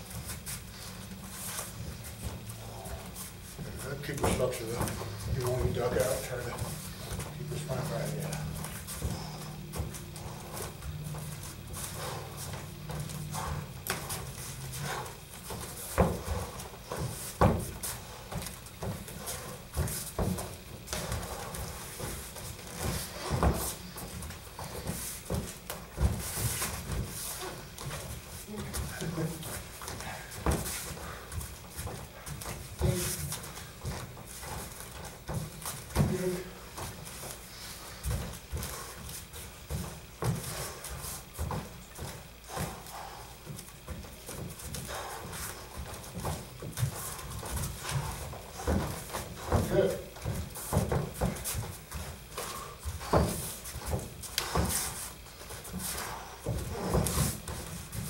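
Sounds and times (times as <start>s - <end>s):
bare feet shuffling on mats: 0.0s - 58.0s.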